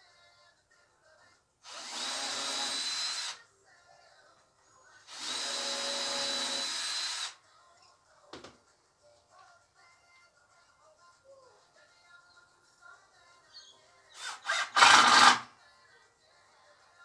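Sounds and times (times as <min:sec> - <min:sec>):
power drill whining: 0:01.7 - 0:03.4, 0:05.1 - 0:07.4, 0:14.2 - 0:15.5.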